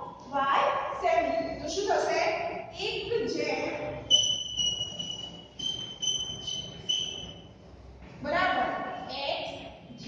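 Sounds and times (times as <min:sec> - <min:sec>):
chalk squeaking on blackboard: 0:04.1 - 0:07.5.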